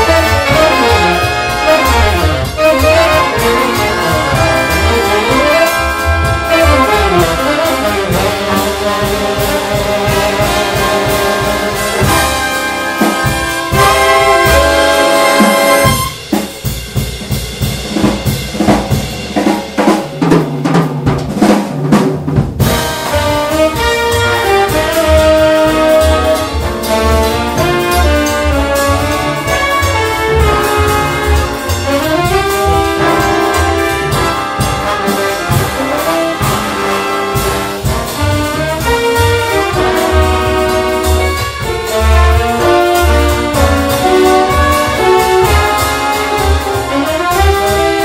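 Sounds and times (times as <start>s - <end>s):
big band brass chord: 0.0s - 18.4s, 22.6s - 48.0s
jazz drum solo: 0.0s - 48.0s.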